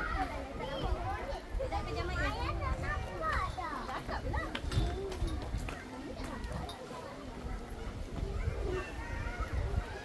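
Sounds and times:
people and children chattering: 0:00.0 - 0:10.0.

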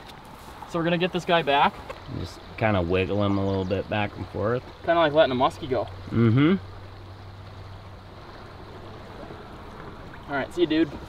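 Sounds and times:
river current rushing: 0:00.0 - 0:11.0.

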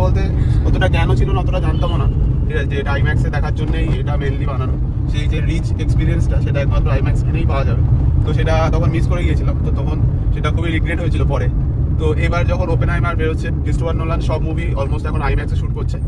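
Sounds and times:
man talking: 0:00.0 - 0:16.0
road and engine rumble in car: 0:00.0 - 0:16.0.

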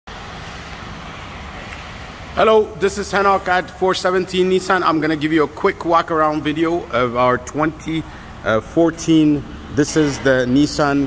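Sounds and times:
vehicle service bay background noise: 0:00.1 - 0:11.0.

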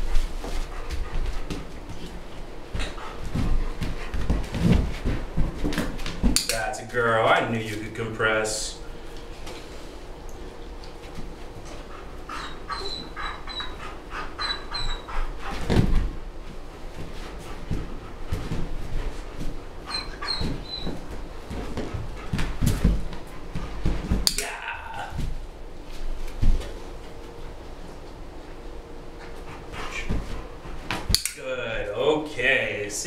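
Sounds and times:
paws thumping on inflatable disk: 0:00.0 - 0:06.4, 0:09.3 - 0:31.1
dog whimpering: 0:12.3 - 0:15.3, 0:19.9 - 0:21.0.

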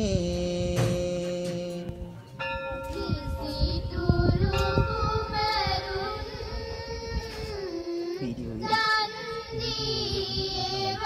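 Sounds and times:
devotional chanting: 0:00.0 - 0:11.0
large bell ringing: 0:02.2 - 0:06.2.

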